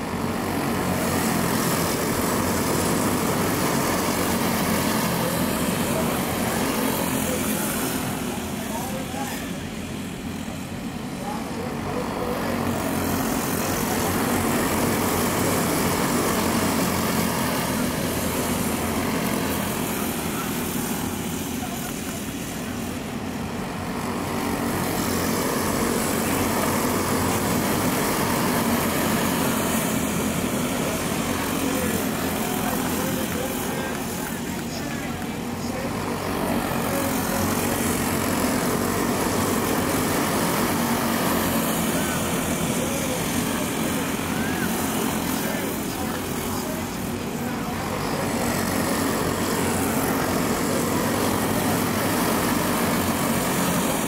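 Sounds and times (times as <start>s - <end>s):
go-kart engines buzzing drone: 0.0s - 54.0s.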